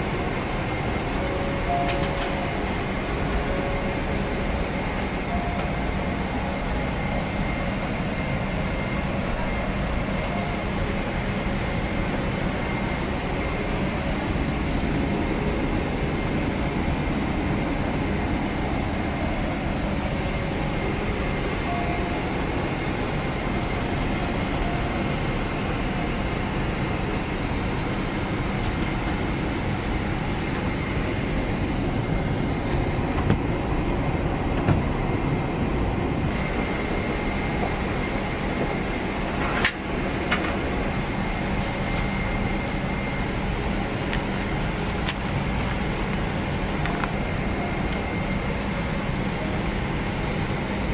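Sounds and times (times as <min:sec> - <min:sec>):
airliner cabin air rushing: 0:00.0 - 0:50.9
faint steady whine: 0:00.0 - 0:50.9.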